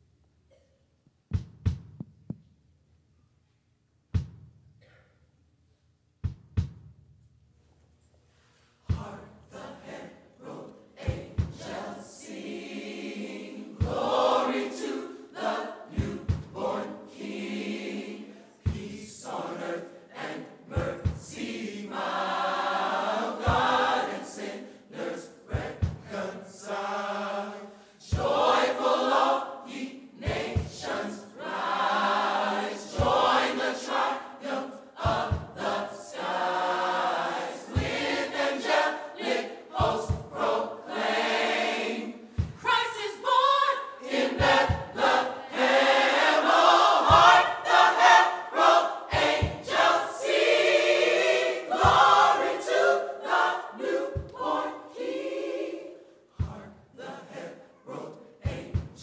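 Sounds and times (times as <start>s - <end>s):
mixed choir singing: 8.8s - 59.0s
sharp beat: 35.0s - 35.6s, 39.8s - 40.5s, 46.4s - 48.2s, 49.1s - 50.6s, 51.7s - 52.4s.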